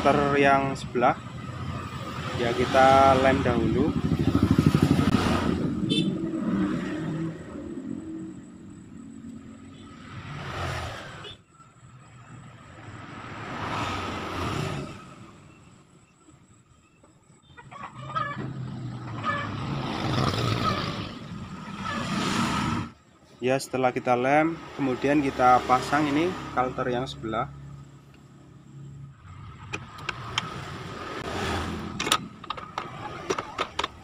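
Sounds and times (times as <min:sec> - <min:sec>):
road traffic passing: 0:00.0 - 0:34.0.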